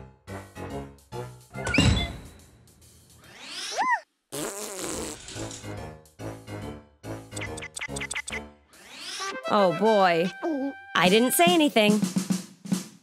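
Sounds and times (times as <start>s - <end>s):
children's background music: 5.8s - 12.4s.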